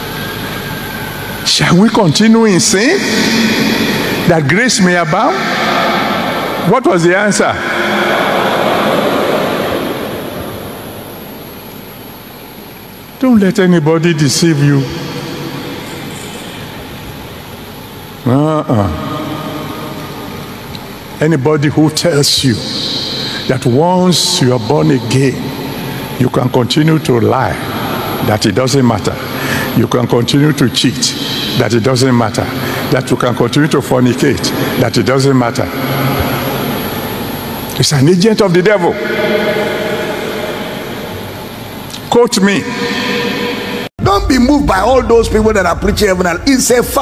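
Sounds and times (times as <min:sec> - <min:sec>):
steady rushing noise: 0:00.0 - 0:13.1
sustained organ chord: 0:00.0 - 0:45.9
person preaching: 0:01.4 - 0:09.7, 0:13.2 - 0:15.4, 0:18.2 - 0:20.0, 0:21.2 - 0:36.8, 0:37.7 - 0:41.1, 0:41.9 - 0:47.0.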